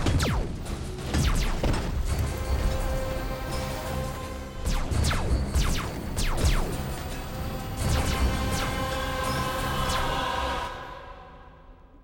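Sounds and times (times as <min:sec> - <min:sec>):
dark film score: 0:00.0 - 0:12.0.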